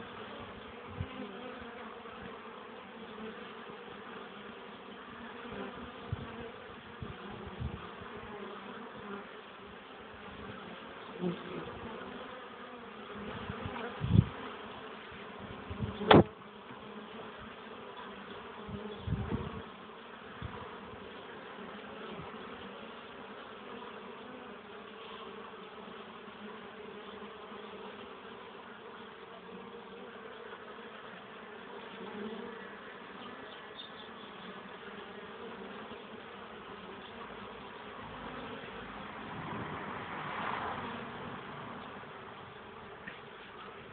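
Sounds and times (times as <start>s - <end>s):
honeybees buzzing: 0.0s - 43.9s.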